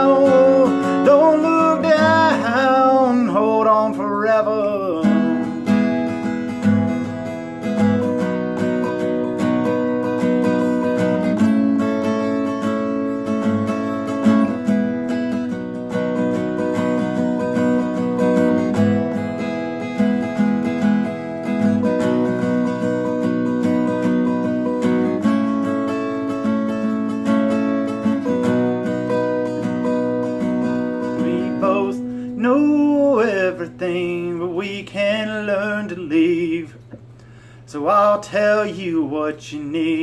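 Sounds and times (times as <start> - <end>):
man singing: 0.0 - 5.8, 30.7 - 37.0, 37.7 - 40.0
acoustic guitar strumming: 0.0 - 40.0.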